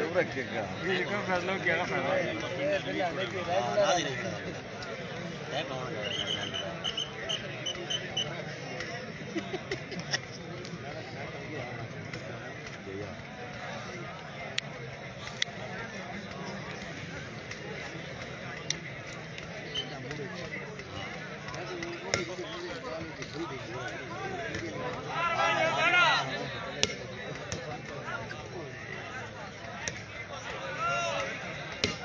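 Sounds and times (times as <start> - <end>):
crowd talking: 0.0 - 32.0.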